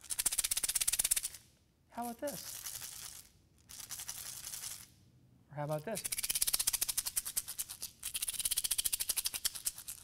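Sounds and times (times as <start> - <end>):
gravel shaker rattling: 2.0 - 4.9, 6.0 - 10.0.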